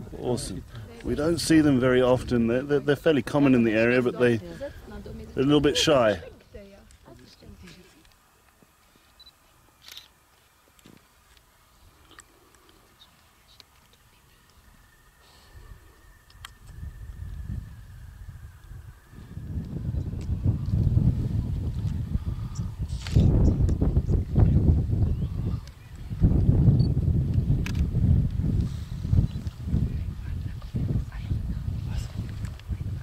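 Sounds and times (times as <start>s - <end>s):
wind buffeting microphone: 0.0s - 6.7s, 15.6s - 33.0s.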